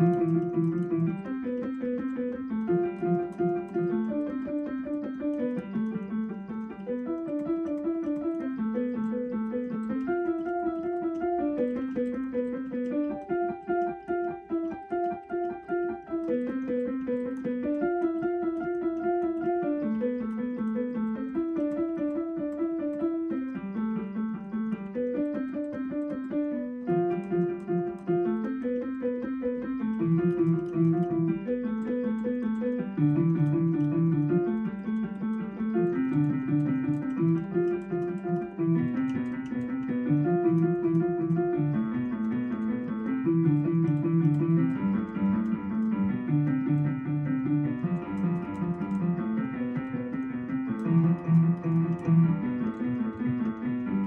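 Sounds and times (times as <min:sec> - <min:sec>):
piano broken-chord figures: 0:00.0 - 0:54.0.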